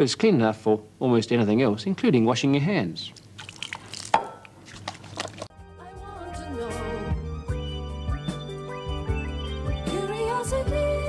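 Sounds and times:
water trickling over hands: 3.0s - 5.5s
small wet splashes: 3.1s - 5.5s.

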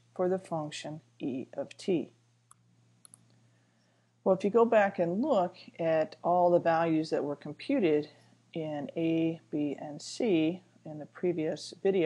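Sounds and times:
low steady hum: 0.0s - 12.0s
faint computer mouse clicks: 2.5s - 3.4s.

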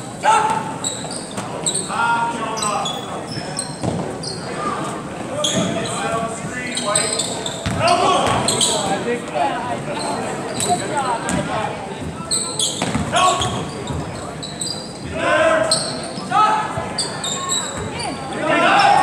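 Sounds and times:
sneakers squeaking: 0.1s - 9.1s, 9.8s - 19.0s
basketball bouncing on hardwood: 7.6s - 8.4s, 12.8s - 13.6s
people calling out: 15.1s - 19.0s.

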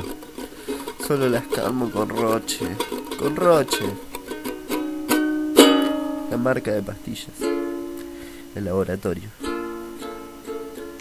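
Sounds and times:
acoustic string instrument strummed: 0.0s - 11.0s.

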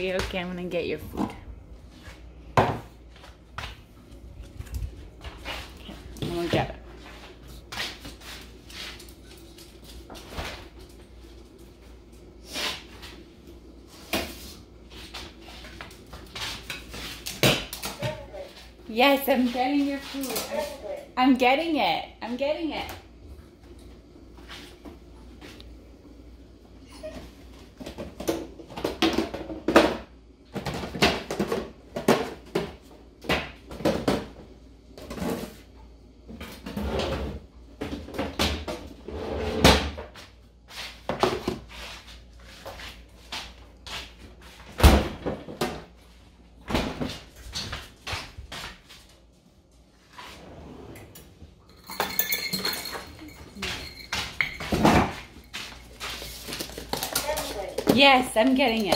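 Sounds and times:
pots and dishes clanking: 51.7s - 55.2s.

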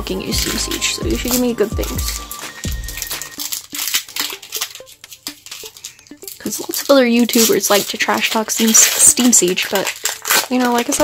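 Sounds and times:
foil pack crinkling and tearing: 0.0s - 11.0s.

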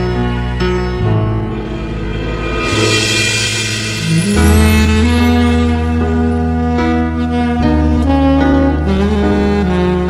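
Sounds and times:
instrumental ballad music: 0.0s - 10.0s
cymbal roll: 1.2s - 6.8s.

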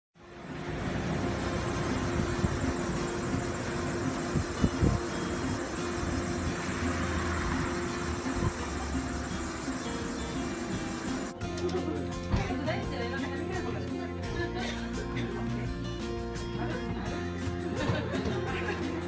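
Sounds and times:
traffic hum: 0.2s - 11.4s.

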